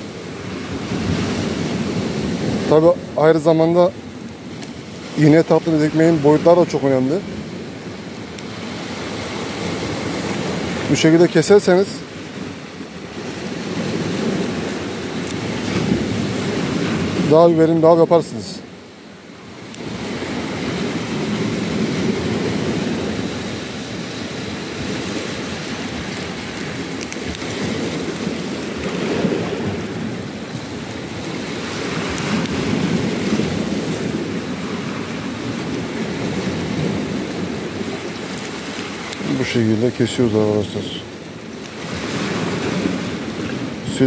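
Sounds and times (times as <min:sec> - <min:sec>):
sea surf washing on shore: 0:00.0 - 0:44.0
wind on microphone: 0:19.5 - 0:44.0.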